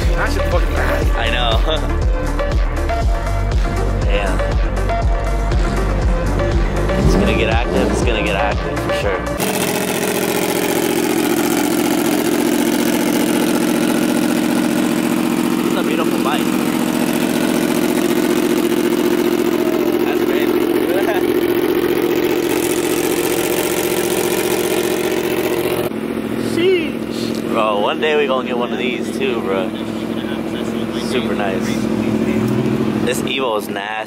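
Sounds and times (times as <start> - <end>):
people talking: 0.0 - 1.9, 4.0 - 4.4, 6.9 - 9.3, 15.7 - 16.5, 19.6 - 21.4, 26.4 - 34.0
vehicle engine idling: 0.0 - 34.0.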